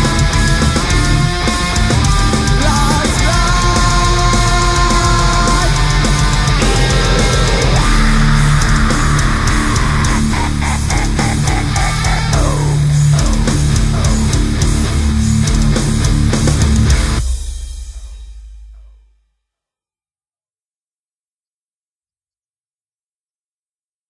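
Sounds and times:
heavy metal music: 0.0s - 18.6s
low rumble: 0.0s - 19.0s.

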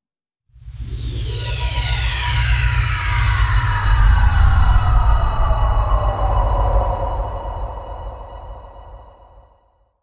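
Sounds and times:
falling electronic pitch sweeps: 0.8s - 9.0s
steady high tones: 0.8s - 9.5s
deep pulsing rumble: 3.2s - 9.2s.

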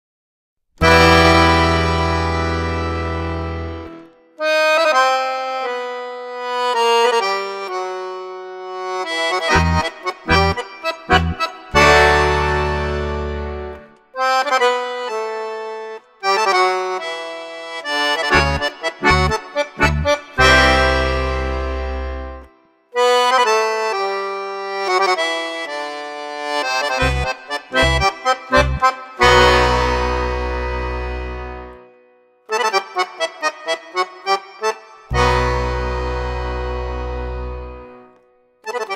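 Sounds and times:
accordion playing: 0.8s - 38.9s.

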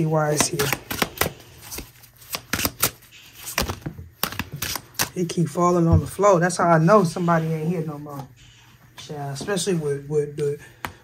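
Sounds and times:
cards shuffling clicks: 0.3s - 5.2s.

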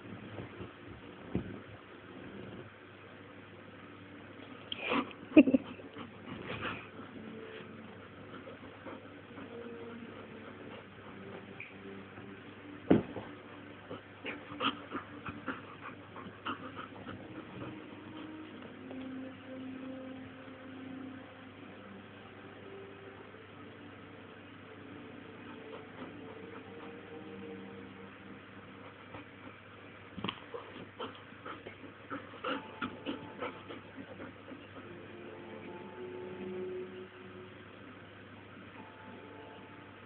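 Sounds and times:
puppy vocalizing: 13.8s - 18.6s.

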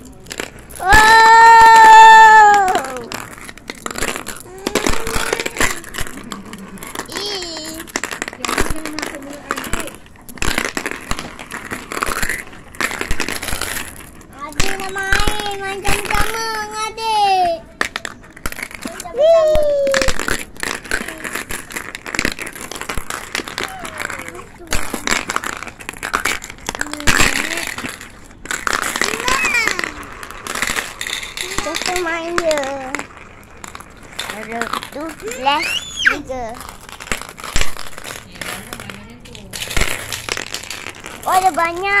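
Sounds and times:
clicks and crackles: 0.0s - 42.0s
marbles clattering: 0.0s - 42.0s
child calling out: 4.4s - 6.1s, 18.9s - 20.2s, 23.6s - 24.9s, 29.1s - 30.2s, 35.2s - 36.6s.

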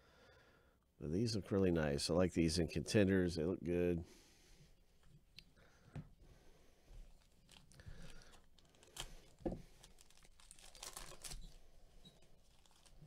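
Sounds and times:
foil wrapper crinkling: 7.1s - 13.0s.

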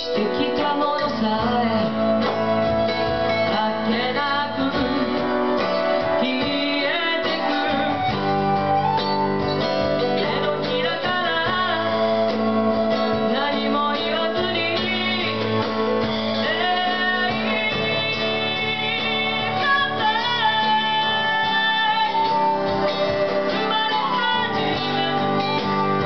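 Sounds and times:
electric guitar: 0.0s - 26.0s
flute melody: 0.0s - 26.0s.

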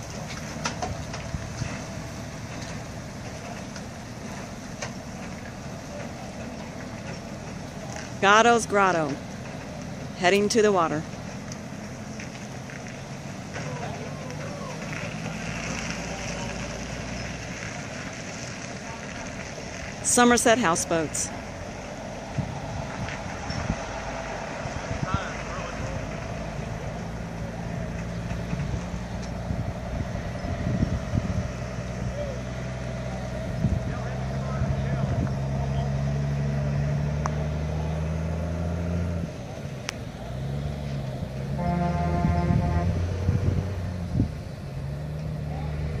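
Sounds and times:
heavy truck engine running: 0.0s - 46.0s
vehicle horn: 41.5s - 43.1s.

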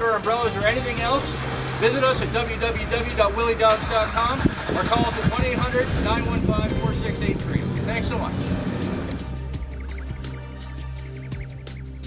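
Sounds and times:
man speaking: 0.0s - 8.5s
music with steady beat: 0.0s - 12.0s.

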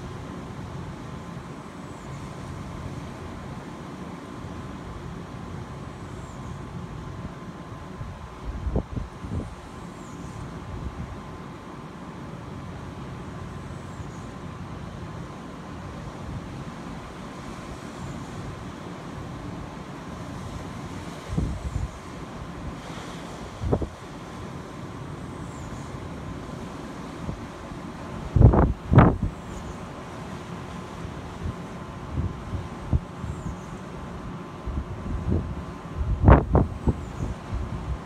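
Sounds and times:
distant surf: 0.0s - 38.0s
wind gusts buffeting microphone: 8.0s - 9.7s, 21.2s - 22.8s, 23.5s - 24.1s, 28.3s - 29.4s, 34.7s - 38.0s.

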